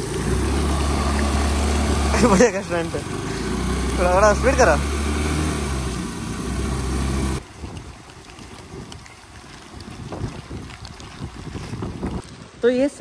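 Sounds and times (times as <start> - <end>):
scooter engine running: 0.0 - 7.4
water splashing from wheel: 0.0 - 13.0.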